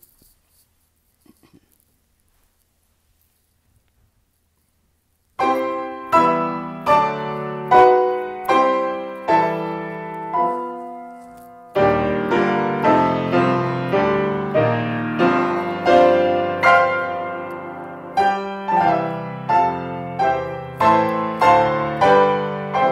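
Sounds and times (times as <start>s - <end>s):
slow piano chords: 5.4s - 22.9s.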